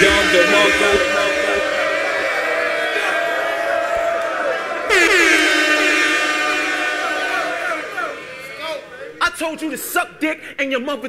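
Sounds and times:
tone sliding down in pitch: 0.0 - 3.5.

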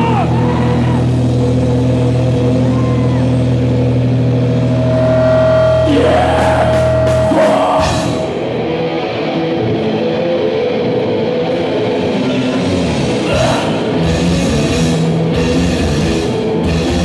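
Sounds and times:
distorted guitar and bass chord: 0.0 - 17.0
guitar feedback whine: 0.0 - 17.0.

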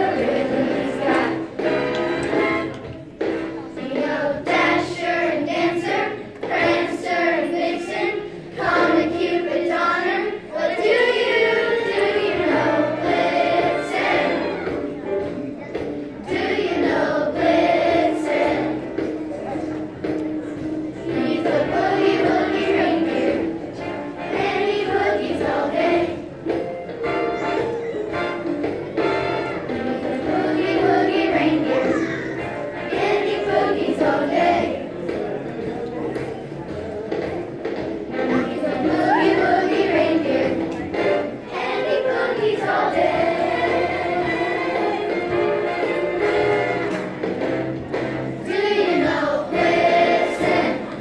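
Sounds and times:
children's choir singing: 0.0 - 51.0
musical accompaniment: 0.0 - 51.0.

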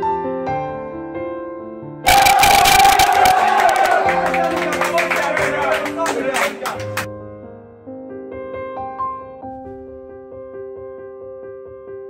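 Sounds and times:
group shouting and cheering: 2.1 - 7.1.

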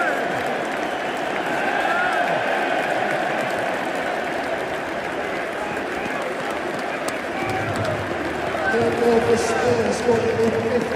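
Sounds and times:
crowd applause: 0.0 - 10.9
stadium crowd voices: 0.0 - 10.9.

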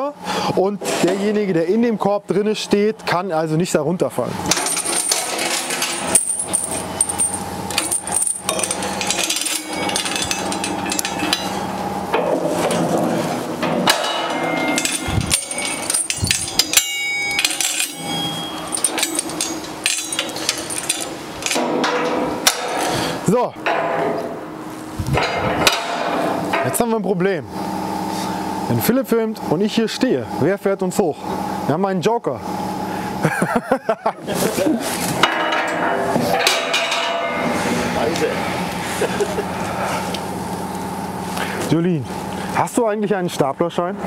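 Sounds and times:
chain rattling: 4.5 - 11.6, 14.0 - 21.6
metal clanking: 4.5 - 24.4, 25.1 - 26.8, 35.2 - 37.6.

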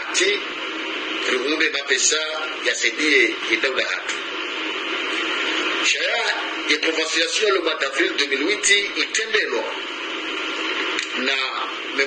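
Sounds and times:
steady static hiss: 0.0 - 12.0.

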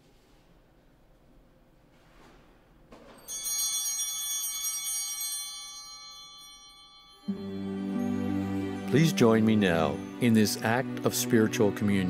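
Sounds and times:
small hand bells ringing: 3.2 - 10.3.

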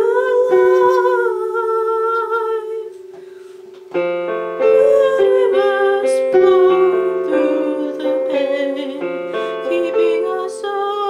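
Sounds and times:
woman singing long note: 0.0 - 3.0, 4.6 - 11.0
electric piano note: 0.0 - 11.0
keyboard chord: 0.0 - 11.0.

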